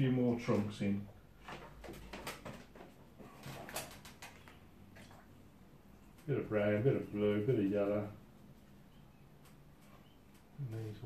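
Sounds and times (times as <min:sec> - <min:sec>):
hands tapping and rustling paper: 0:01.4 - 0:05.2.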